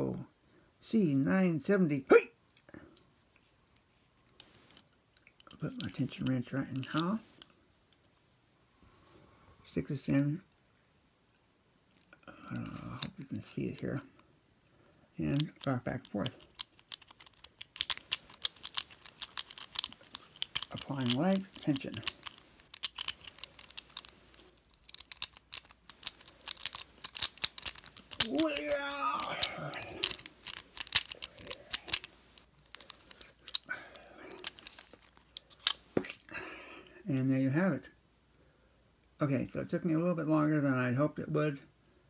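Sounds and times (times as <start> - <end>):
lock pick metal clicks: 15.4 - 33.7, 34.4 - 35.8.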